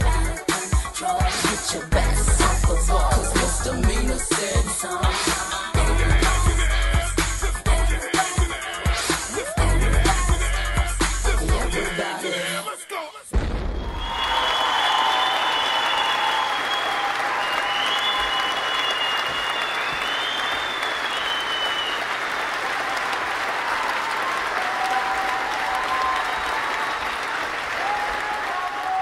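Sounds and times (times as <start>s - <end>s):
audience applauding: 13.8s - 29.0s.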